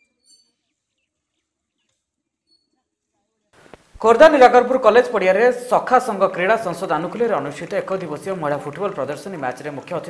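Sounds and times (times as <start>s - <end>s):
faint high bird chirp: 0.0s - 2.8s.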